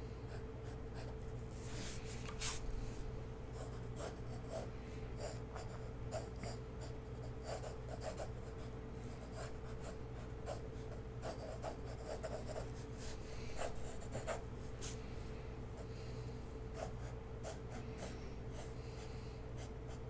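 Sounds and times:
steady low hum: 0.0 - 20.0
pencil sketching on paper: 11.2 - 14.4.

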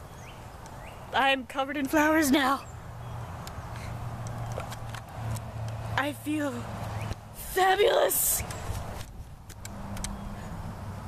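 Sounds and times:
faint clicks: 8.4 - 10.2.

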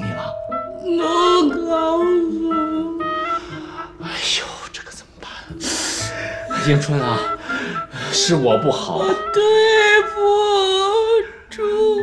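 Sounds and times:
soft background music: 0.0 - 12.0
man's voice: 5.6 - 9.6
woman crying: 5.6 - 12.0.

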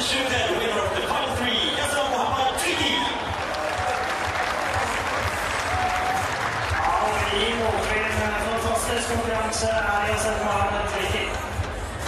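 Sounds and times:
announcer speaking over loudspeakers: 0.0 - 3.3, 6.7 - 11.5
stadium crowd applauding: 0.0 - 12.0.

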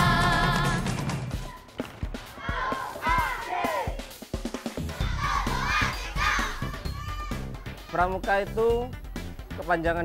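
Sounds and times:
background music with low beat: 0.0 - 10.0
children shouting: 2.3 - 4.0, 5.0 - 7.8.

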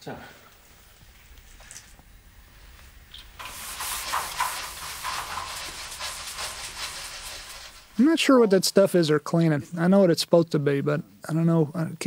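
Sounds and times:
loud hiss of venting vapor: 3.1 - 8.3.

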